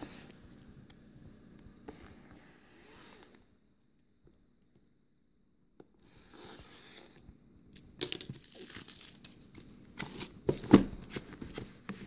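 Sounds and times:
plastic shrink wrap tearing: 8.1 - 9.5.

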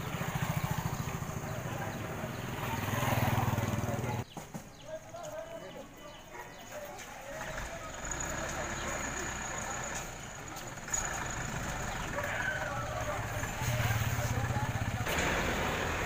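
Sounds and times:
bus engine idling: 0.0 - 4.2, 7.1 - 16.0
people talking: 0.6 - 4.2, 4.8 - 15.8.

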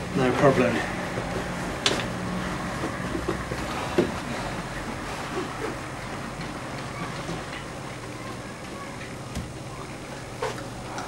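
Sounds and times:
footsteps and shuffling: 1.0 - 9.1.

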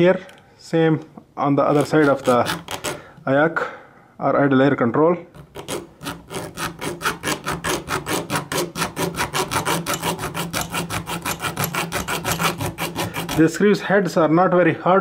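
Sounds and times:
hacksaw cutting metal: 1.7 - 3.1, 5.4 - 13.7.

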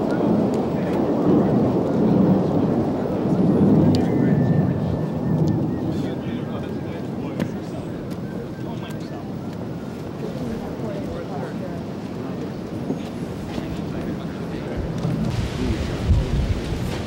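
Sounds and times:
murmur of people talking: 0.0 - 17.0
wind buffeting microphone: 0.0 - 17.0.

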